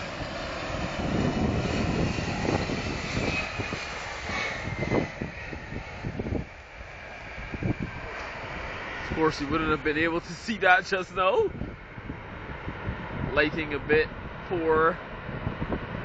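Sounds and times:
jet engines landing: 0:00.0 - 0:16.0.

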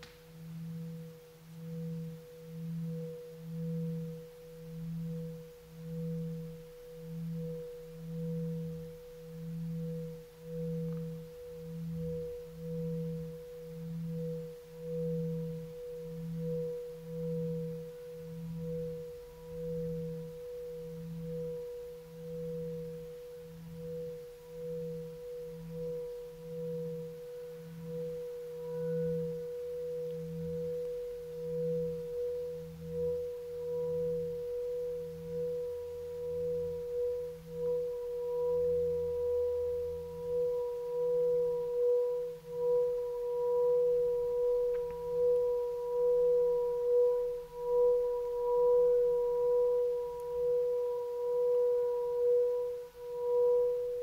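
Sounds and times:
singing bowl tone: 0:00.0 - 0:54.0.

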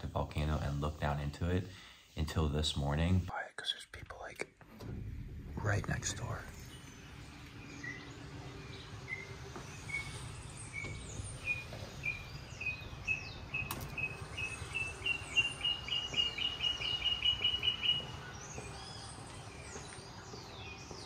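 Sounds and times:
other birds' down-slurred whistles: 0:07.7 - 0:18.7.

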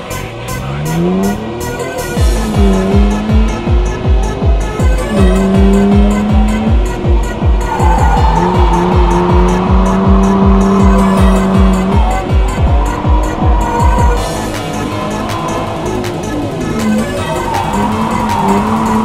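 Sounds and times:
car engine at steady revs: 0:00.0 - 0:19.0
hard trance music: 0:00.0 - 0:19.0
tyres squealing: 0:01.6 - 0:19.0.

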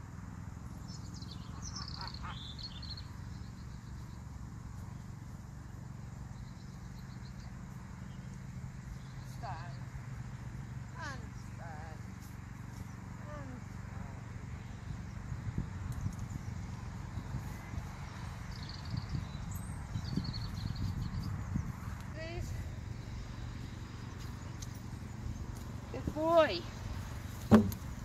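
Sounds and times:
hooves thudding on grass: 0:21.0 - 0:28.0.

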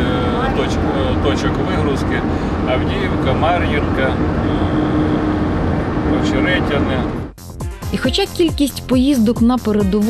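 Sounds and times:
vehicle engine and road rumble: 0:00.0 - 0:07.4.

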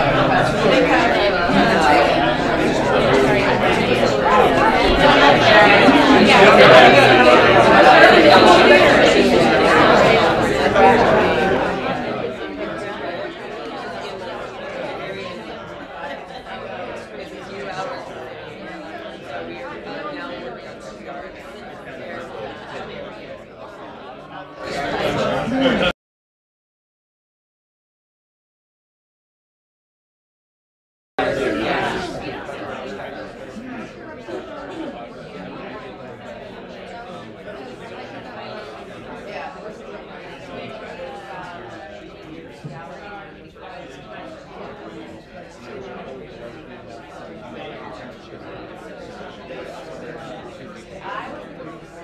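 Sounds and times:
crowd babble in a hall: 0:00.0 - 0:26.0, 0:31.2 - 0:52.0.

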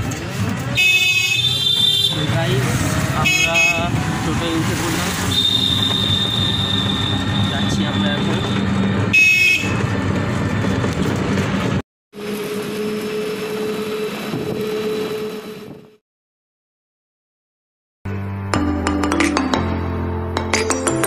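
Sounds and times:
road rumble and body rattle: 0:00.0 - 0:16.0.

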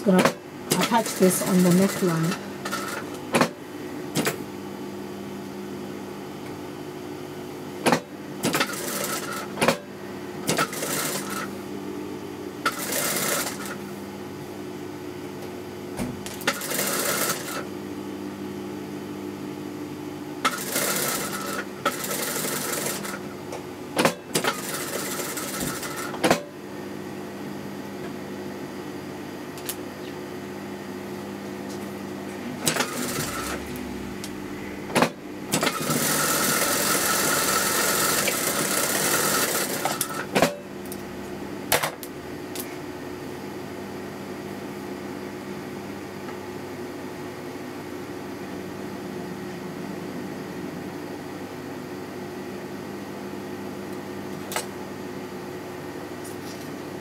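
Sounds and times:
steady hum: 0:00.0 - 0:51.5
sewing machine stitching: 0:08.4 - 0:09.5, 0:12.7 - 0:13.8, 0:16.5 - 0:17.6, 0:20.5 - 0:23.2, 0:32.6 - 0:33.7, 0:35.5 - 0:40.3.

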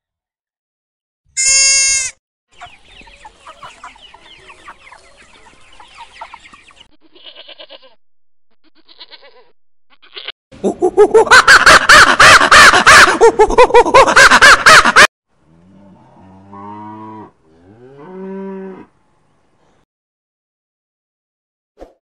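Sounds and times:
sheep bleat: 0:01.4 - 0:02.2, 0:06.9 - 0:08.0, 0:08.6 - 0:10.3.

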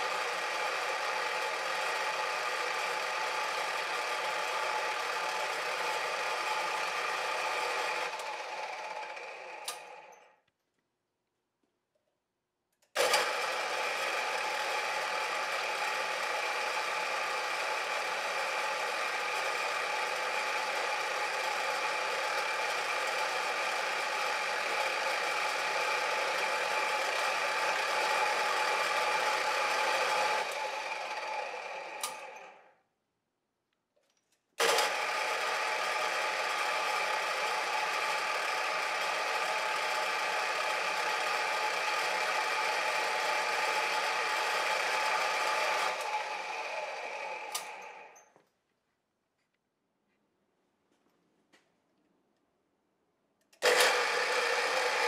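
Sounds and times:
pillar drill boring into wood: 0:00.0 - 0:10.3, 0:13.0 - 0:32.7, 0:34.6 - 0:48.3, 0:53.6 - 0:55.0.

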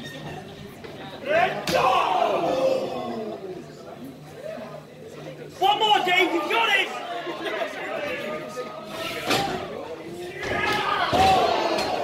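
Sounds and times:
audience shouting and chattering: 0:00.0 - 0:12.0.

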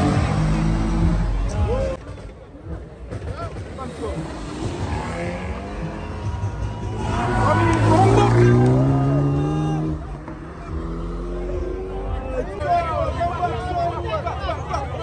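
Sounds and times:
car engine revving: 0:00.0 - 0:01.8, 0:03.1 - 0:12.4
crowd voices: 0:00.0 - 0:15.0.

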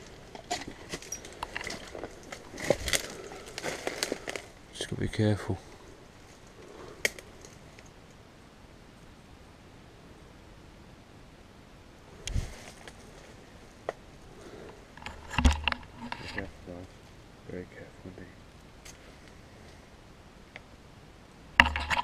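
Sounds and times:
background hiss: 0:00.0 - 0:22.0
rustles: 0:00.0 - 0:22.0.

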